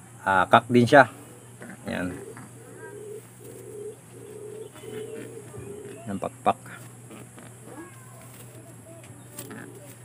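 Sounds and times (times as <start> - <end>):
pigeon cooing: 1.1 - 10.0.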